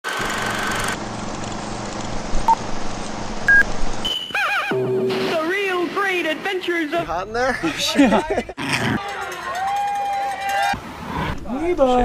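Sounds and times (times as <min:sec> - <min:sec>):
short electronic beeps: 0:03.5 - 0:05.1.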